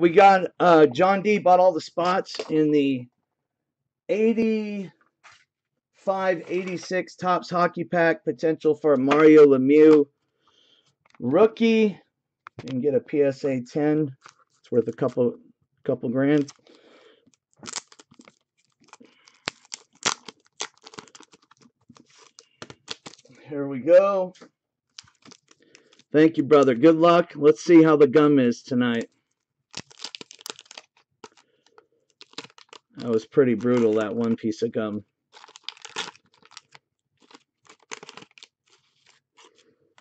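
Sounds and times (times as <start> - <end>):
plastic sleeves crinkling: 2.1 - 2.6, 6.2 - 7.0, 14.0 - 15.2, 16.3 - 23.4, 24.9 - 26.9, 28.9 - 40.0.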